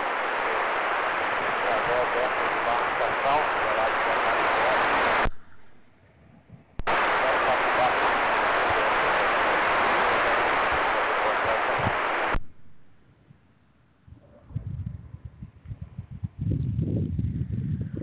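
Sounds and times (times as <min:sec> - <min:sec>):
radio scanner static hiss: 0:00.0 - 0:05.8, 0:06.8 - 0:13.0.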